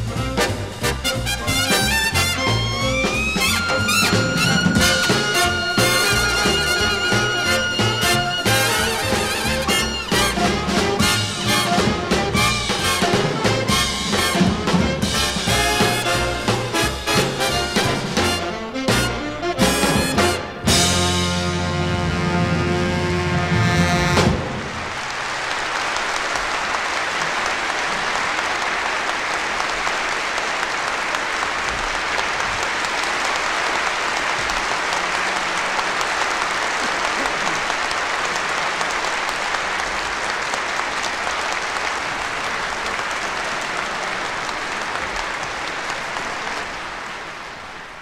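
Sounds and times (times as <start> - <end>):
audience applauding: 0.0 - 19.0, 24.0 - 48.0.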